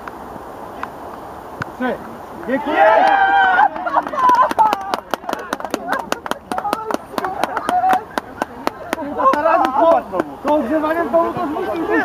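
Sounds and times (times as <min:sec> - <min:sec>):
voices calling out: 0:01.8 - 0:12.0
hands clapping: 0:03.0 - 0:10.7.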